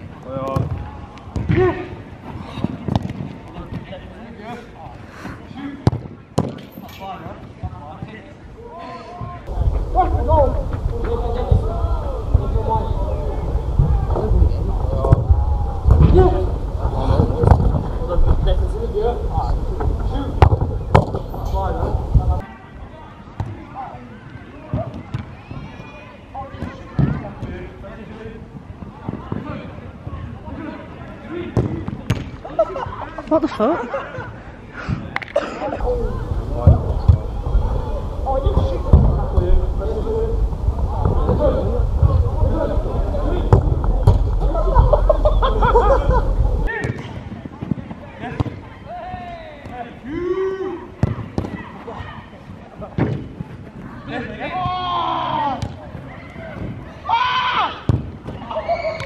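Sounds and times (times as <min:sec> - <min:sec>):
players shouting: 0:08.6 - 0:20.9, 0:53.8 - 0:59.0
footballers shouting: 0:08.6 - 0:21.0, 0:35.8 - 0:53.2, 0:53.8 - 0:59.0
low rumble: 0:35.9 - 0:46.7
football being kicked: 0:43.4 - 0:44.4, 0:57.9 - 0:58.4.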